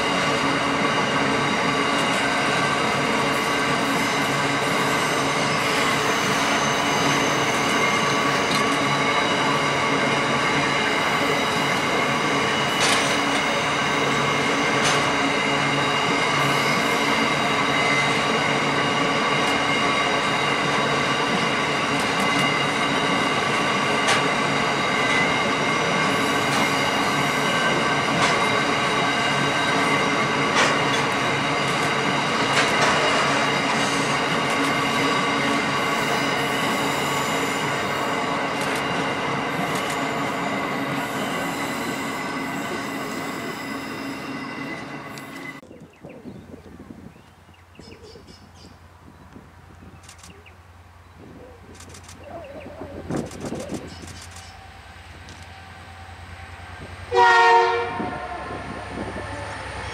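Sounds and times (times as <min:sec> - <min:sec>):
train wagons rolling past: 0:00.0 - 0:46.1
wheel squeal: 0:04.7 - 0:08.6.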